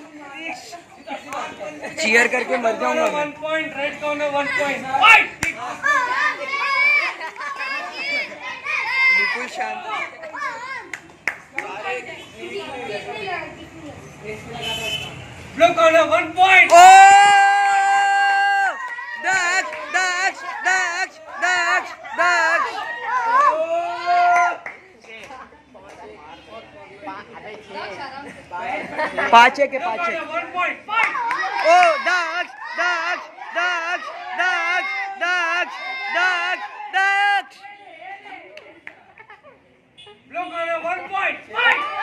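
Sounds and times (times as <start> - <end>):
quiet chatter: 0.0 - 16.4, 18.8 - 42.0
children shouting and cheering: 3.9 - 13.6, 16.5 - 24.8, 30.3 - 39.5, 41.0 - 42.0.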